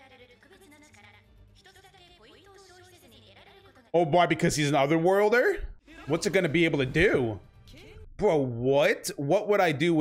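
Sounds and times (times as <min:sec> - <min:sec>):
quiet music: 0:04.0 - 0:10.0.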